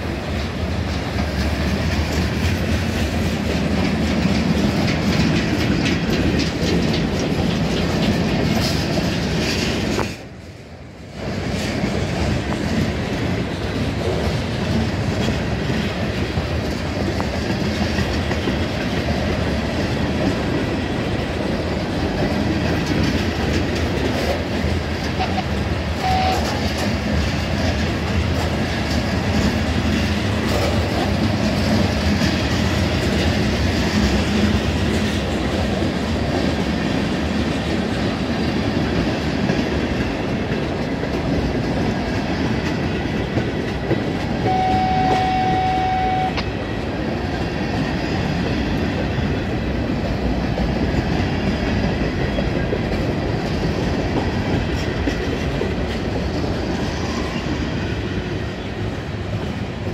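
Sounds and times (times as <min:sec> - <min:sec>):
freight train rumbling past: 0:00.0 - 0:59.9
high steady tone: 0:44.4 - 0:46.5.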